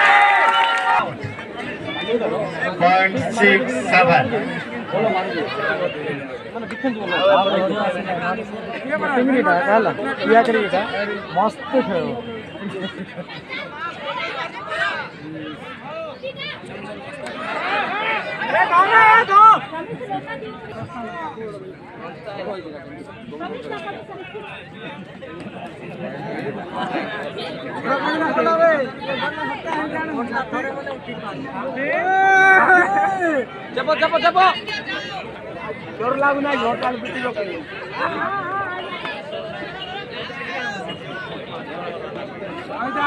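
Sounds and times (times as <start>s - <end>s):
crowd chatter: 0.0s - 43.0s
voices talking and calling out: 0.0s - 43.0s
high voices shouting: 13.4s - 19.7s, 31.8s - 35.7s.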